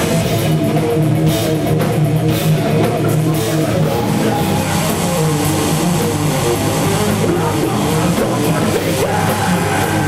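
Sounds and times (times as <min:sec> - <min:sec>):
live heavy metal band: 0:00.0 - 0:10.0.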